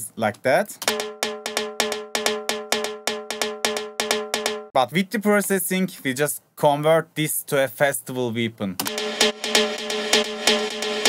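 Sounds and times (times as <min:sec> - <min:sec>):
pitched percussion hits looping: 0:00.8 - 0:04.8, 0:08.9 - 0:11.0.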